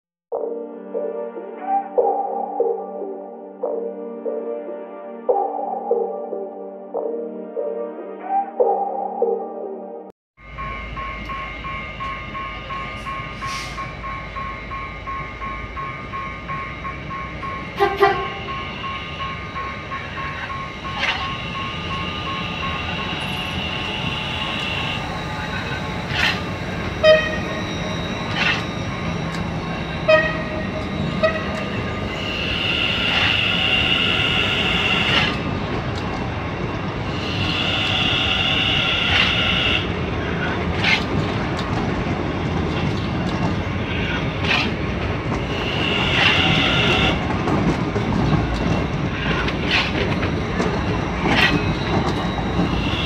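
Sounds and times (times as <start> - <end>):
level crossing warning bell: 10.4 - 53.0
train wheels clacking on rails: 10.5 - 53.0.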